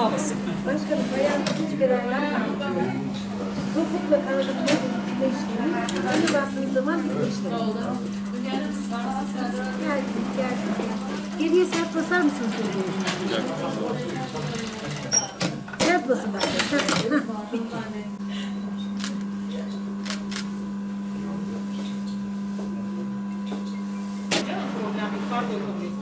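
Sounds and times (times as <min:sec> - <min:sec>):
people talking in background: 0:00.0 - 0:19.9, 0:24.4 - 0:26.0.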